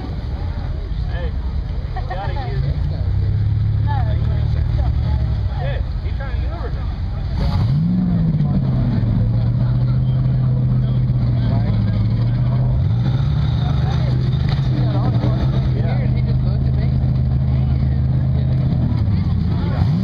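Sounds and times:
buggy engine revving high: 6.7 - 20.0.

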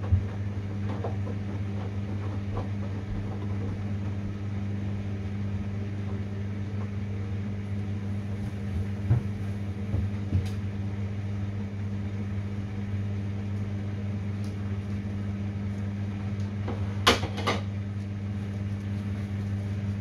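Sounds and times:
washing machine motor hum: 0.0 - 20.0
knocks in washing machine drum: 8.8 - 10.5.

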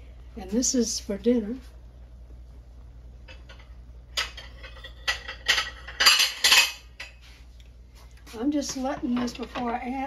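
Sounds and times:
metal kitchenware clattering: 3.3 - 7.2.

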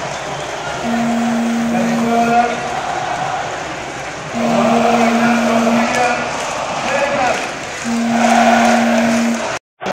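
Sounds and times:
stadium crowd cheering and chanting: 0.0 - 9.9
long steady held note: 0.8 - 2.4, 4.4 - 6.0, 7.8 - 9.6.

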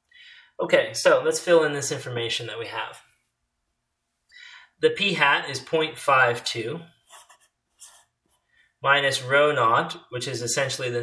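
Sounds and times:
marker scratching on paper: 6.9 - 8.6.

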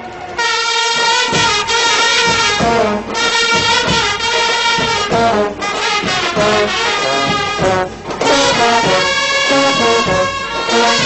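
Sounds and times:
brass band holding a chord: 0.1 - 11.0.

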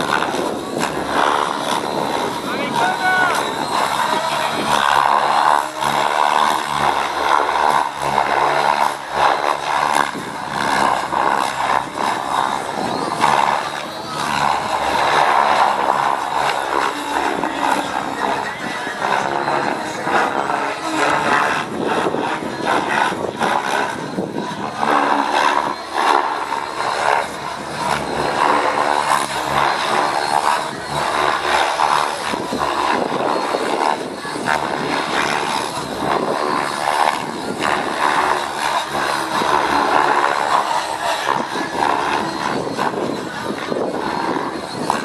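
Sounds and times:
model helicopter rotor chopping: 0.0 - 45.0.

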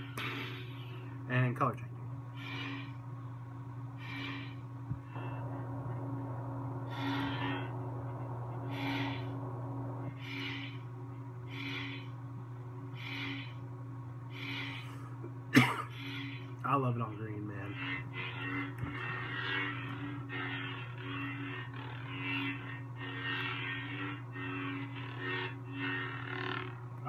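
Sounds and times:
lightsaber idle hum: 2.3 - 26.8
soft hissy pulses: 5.1 - 12.3.

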